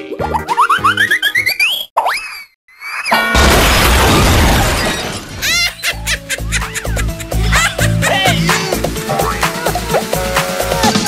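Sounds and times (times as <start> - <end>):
crash sound effect: 3.2 - 5.5
upbeat music with bass beat: 6.4 - 11.0.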